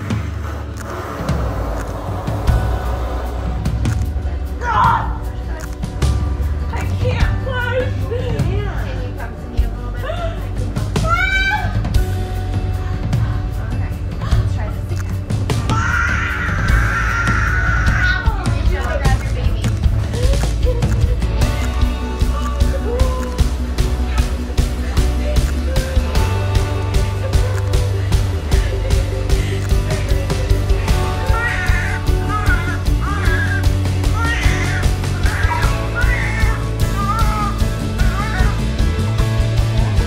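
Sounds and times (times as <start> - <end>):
background music: 0.0 - 40.0
baby crying: 30.9 - 38.6.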